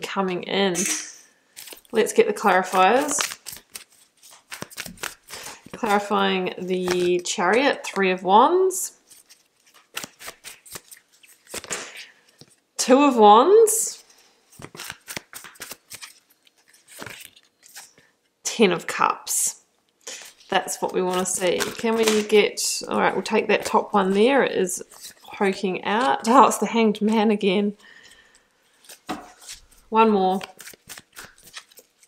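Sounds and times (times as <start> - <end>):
cards being shuffled: 1.6 - 7.2, 9.0 - 12.6, 14.5 - 18.1, 20.0 - 22.4, 28.6 - 32.0.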